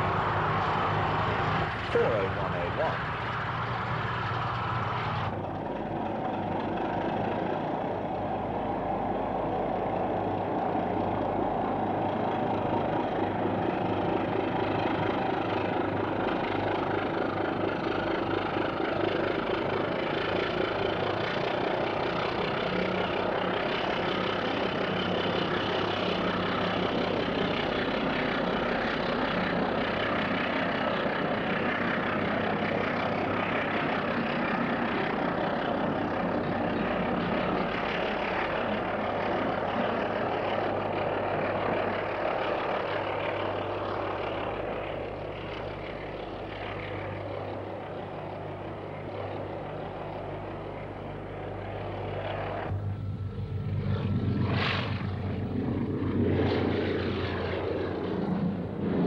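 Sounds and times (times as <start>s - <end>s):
diesel locomotive engine droning: 0.0s - 59.0s.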